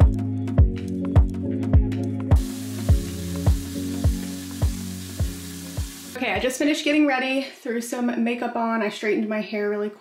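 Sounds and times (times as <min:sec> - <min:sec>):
music with steady beat: 0:00.0 - 0:06.6
shower head spraying water: 0:02.4 - 0:06.7.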